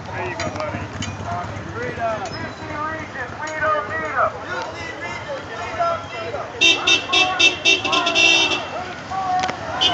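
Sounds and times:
people talking: 0.0 - 9.9
car horn beeping: 5.8 - 8.9.

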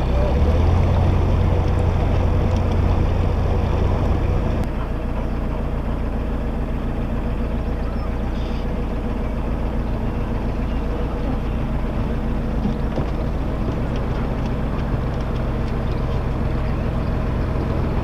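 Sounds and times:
diesel engine humming: 0.0 - 18.0.

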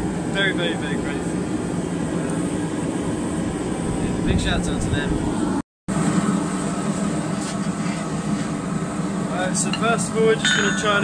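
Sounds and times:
forge droning: 0.0 - 11.0.

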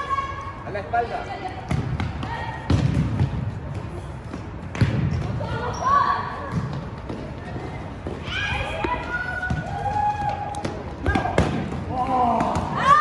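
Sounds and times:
ball kicked and bouncing in hall: 1.4 - 13.0.

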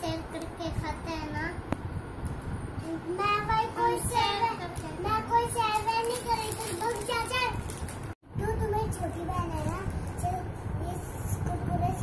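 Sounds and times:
girl talking: 0.0 - 1.6, 2.8 - 7.7, 8.4 - 12.0.

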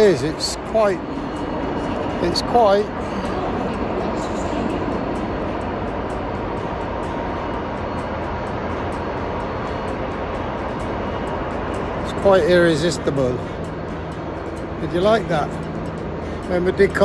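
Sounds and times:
station rumble and hiss: 0.0 - 17.0.

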